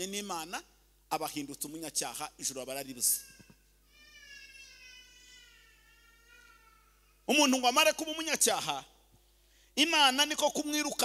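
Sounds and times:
man preaching into microphone: 0:00.0 - 0:03.3, 0:07.3 - 0:09.0, 0:09.7 - 0:11.0.

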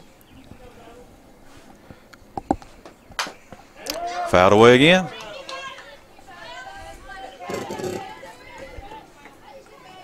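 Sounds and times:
faint background voices: 0:00.0 - 0:04.4, 0:05.0 - 0:10.0.

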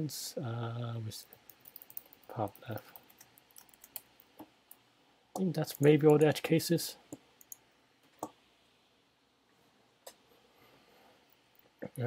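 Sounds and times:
faint computer clicks: 0:01.3 - 0:04.8.

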